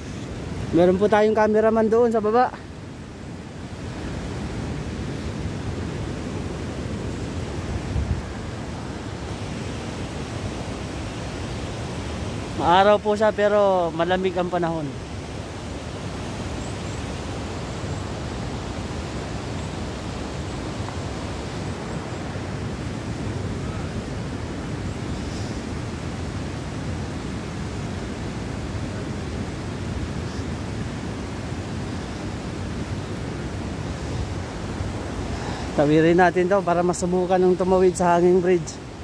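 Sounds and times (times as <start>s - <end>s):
wind on microphone: 2.9s - 13.2s, 14.3s - 39.0s.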